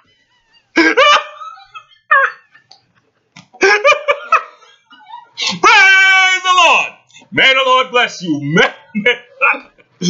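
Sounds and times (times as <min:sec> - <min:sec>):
man laughing loudly: 0:00.7 - 0:02.7, 0:03.6 - 0:05.9.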